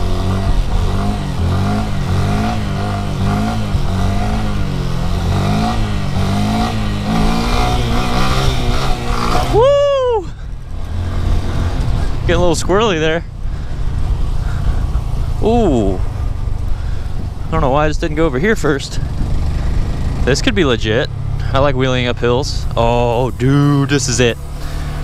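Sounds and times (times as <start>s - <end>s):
motorcycle engine revving: 0.0s - 25.0s.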